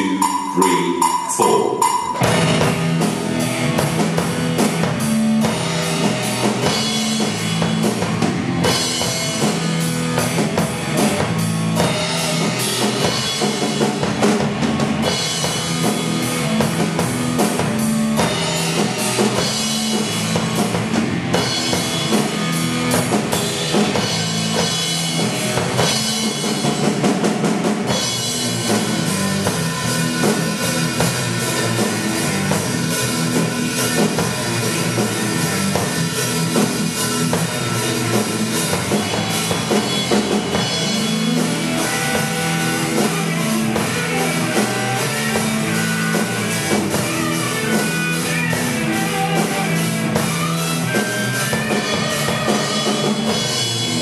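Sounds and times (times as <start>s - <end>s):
bass line: 0.0s - 54.0s
drum kit playing rock groove: 0.0s - 54.0s
rock backing track: 0.0s - 54.0s.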